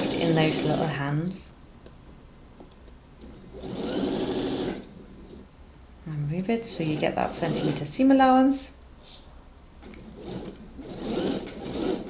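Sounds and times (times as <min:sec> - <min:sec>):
sewing machine stitching: 0:00.0 - 0:00.9, 0:03.2 - 0:04.9, 0:06.8 - 0:07.9, 0:09.8 - 0:12.0.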